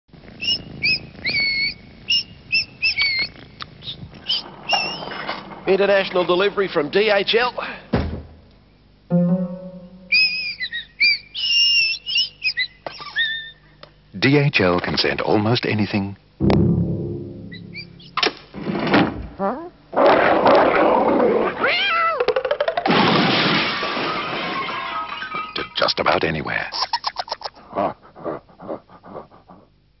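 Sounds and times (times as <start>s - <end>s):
small bird chirping: 0.3s - 5.2s, 10.0s - 13.6s, 17.5s - 18.2s
dog panting: 27.9s - 29.7s.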